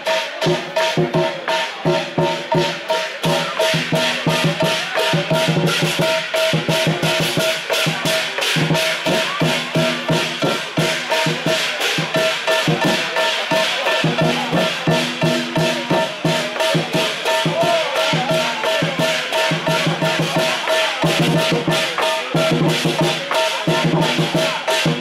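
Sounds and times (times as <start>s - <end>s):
cymbals crashing: 0.0s - 25.0s
lion drum beating: 0.0s - 25.0s.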